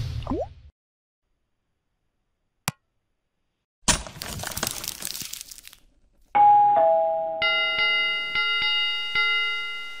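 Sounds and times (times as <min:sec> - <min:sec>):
two-note ding-dong chime: 0:06.4 - 0:10.0.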